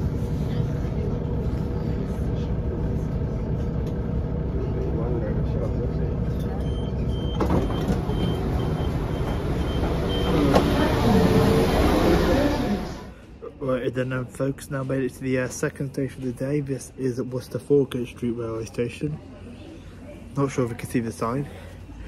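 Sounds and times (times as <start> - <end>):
train low rumble: 0.0 - 13.4
passengers' voices: 0.0 - 22.0
short high door beeps: 6.4 - 10.9.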